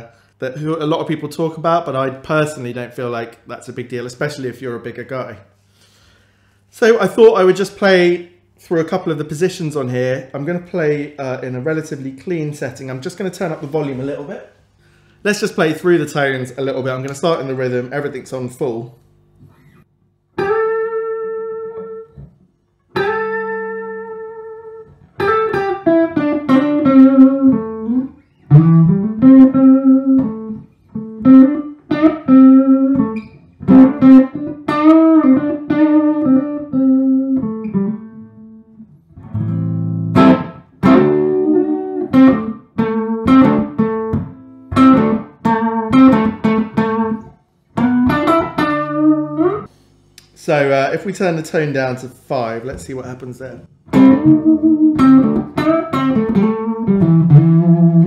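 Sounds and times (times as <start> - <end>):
clean electric guitar: 19.0 - 50.4, 53.6 - 58.0.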